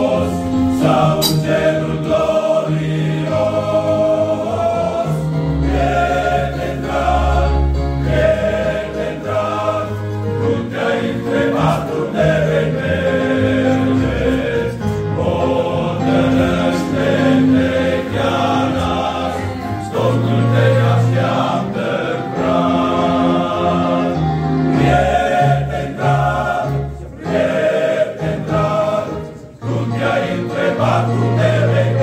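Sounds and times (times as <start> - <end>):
male choir singing: 0.0 - 32.0.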